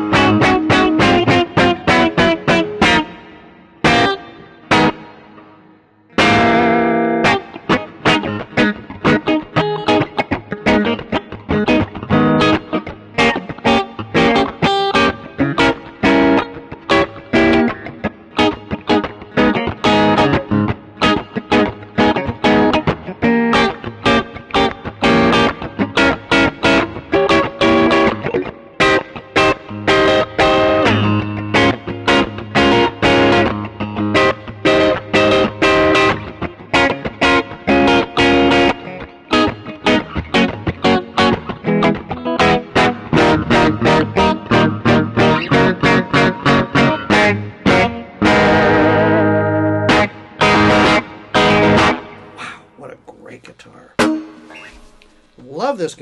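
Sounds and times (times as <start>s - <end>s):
electric guitar riffs: 0.0s - 53.0s, 53.8s - 56.0s.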